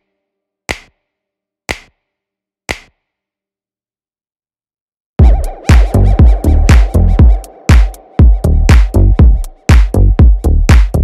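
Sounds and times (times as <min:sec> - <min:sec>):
electronic background track: 0:05.2 - 0:11.0
sharp drum machine hits: 0:05.2 - 0:11.0.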